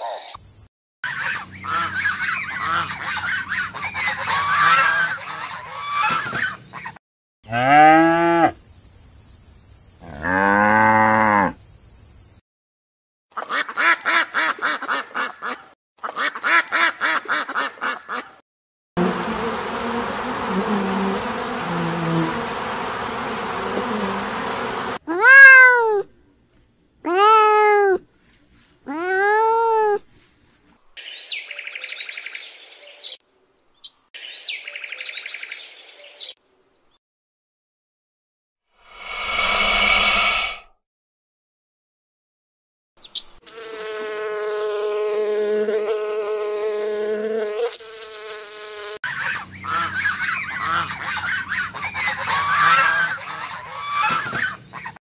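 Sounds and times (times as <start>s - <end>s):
cow mooing: 7.5s - 8.6s, 10.1s - 11.6s
bee buzzing: 19.0s - 25.0s, 43.4s - 49.0s
cat meowing: 25.1s - 26.1s, 27.1s - 28.0s
rapid pulsed animal calls: 38.8s - 40.7s.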